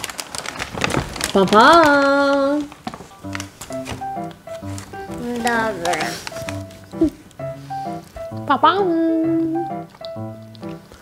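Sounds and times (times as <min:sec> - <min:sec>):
melody of short notes: 0:03.2 - 0:10.9.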